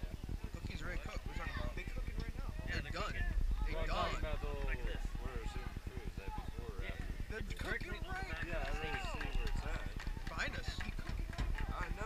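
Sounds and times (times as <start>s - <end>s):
rapid low flutter: 0.0s - 12.0s.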